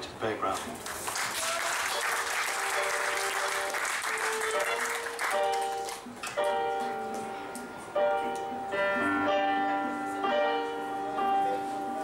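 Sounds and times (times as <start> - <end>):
audience applauding: 0.8 - 6.1
electric keyboard chords: 2.0 - 12.0.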